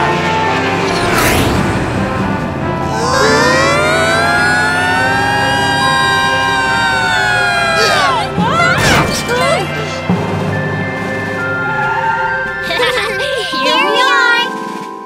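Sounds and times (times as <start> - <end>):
cartoon background music: 0.0 - 15.0
long high-pitched tone: 2.9 - 8.4.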